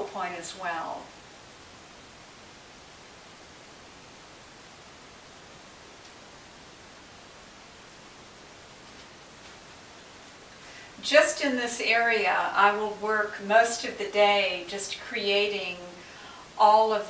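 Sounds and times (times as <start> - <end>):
faint room tone hiss: 0.0 - 17.0.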